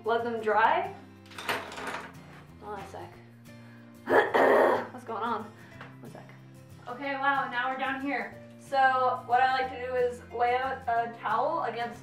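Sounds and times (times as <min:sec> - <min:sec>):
faint background music: 0:00.0 - 0:12.0
rustling and clattering handling: 0:01.2 - 0:02.6.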